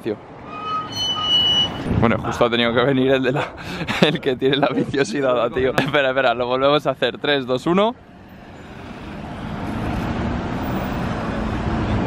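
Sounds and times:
city street traffic: 0:00.0 - 0:12.0
high-pitched electronic beep: 0:00.5 - 0:01.9.

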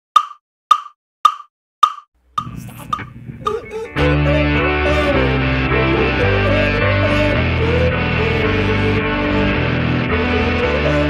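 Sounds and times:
metronome clicks: 0:00.2 - 0:03.6.

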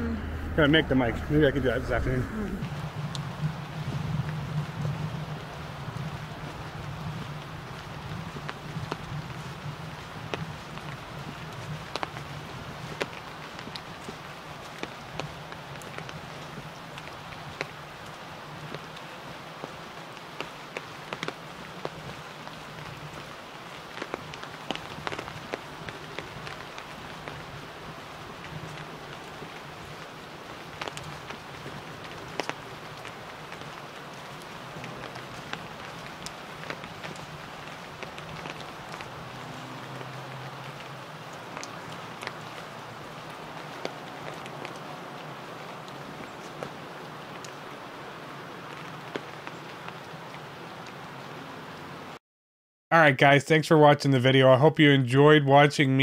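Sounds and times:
steady low hum: 0:00.0 - 0:04.2
leaves and twigs crackling underfoot: 0:05.5 - 0:51.0.

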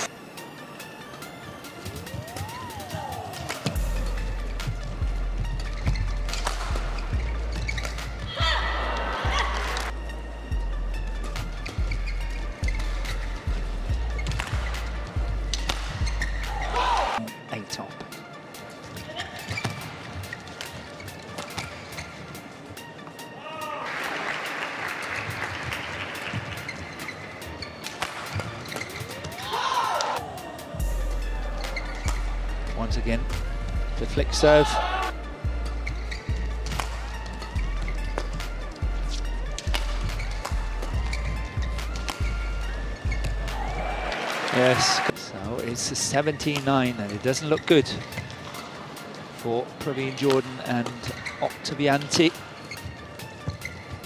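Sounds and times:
rackets striking shuttlecock: 0:03.4 - 0:03.8, 0:05.7 - 0:06.8, 0:14.2 - 0:16.6, 0:27.7 - 0:29.4, 0:36.6 - 0:37.4, 0:39.1 - 0:40.9, 0:41.5 - 0:43.6
background music with bass line: 0:03.8 - 0:17.2, 0:30.8 - 0:44.1
shoe squeaks on court: 0:04.5 - 0:08.3, 0:11.3 - 0:16.7, 0:18.9 - 0:22.5, 0:26.2 - 0:29.5, 0:31.6 - 0:32.4, 0:35.7 - 0:43.8, 0:46.0 - 0:48.8, 0:50.1 - 0:54.0.

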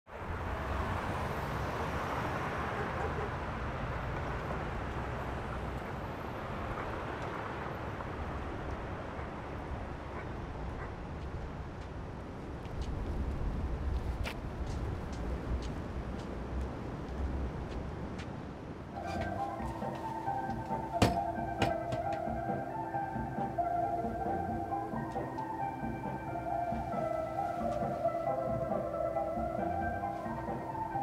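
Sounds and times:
low rumble of traffic: 0:00.1 - 0:31.0
footsteps on pavement: 0:11.1 - 0:22.4.

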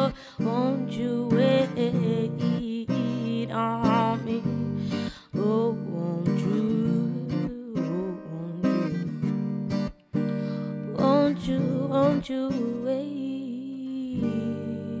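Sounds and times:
acoustic guitar strumming: 0:00.0 - 0:15.0
woman singing: 0:00.0 - 0:15.0.

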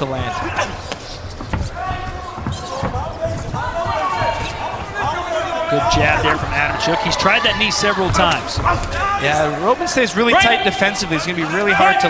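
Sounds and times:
voices shouting: 0:01.6 - 0:12.0.

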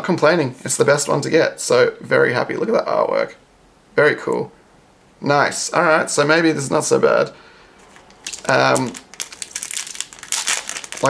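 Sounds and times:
foil wrapper crinkling and tearing: 0:07.8 - 0:11.0.

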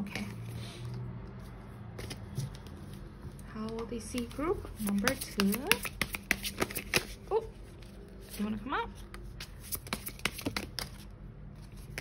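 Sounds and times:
cards tapping and clicking: 0:03.7 - 0:07.2, 0:09.1 - 0:11.1.

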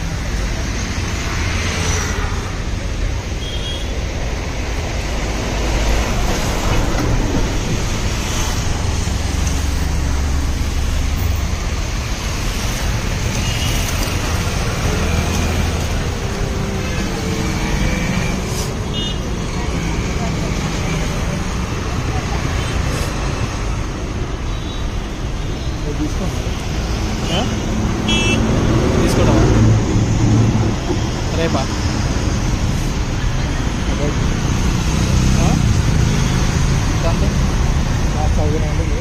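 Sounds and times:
road traffic rumble: 0:00.0 - 0:39.0.

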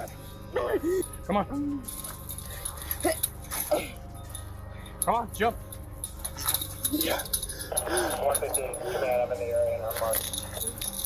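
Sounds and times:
chain-link fence rattling: 0:00.0 - 0:11.0
gear jingling: 0:00.0 - 0:11.0.

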